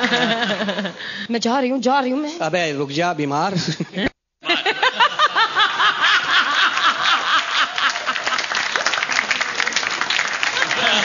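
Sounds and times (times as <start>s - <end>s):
audience laughing: 0.0s - 1.0s, 3.6s - 11.0s
audience applause: 5.0s - 11.0s.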